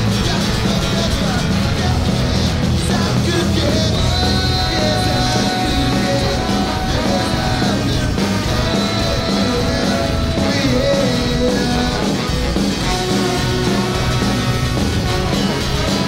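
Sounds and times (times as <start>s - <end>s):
man singing held notes: 0.0s - 14.0s
live ska-punk band playing: 0.0s - 16.0s.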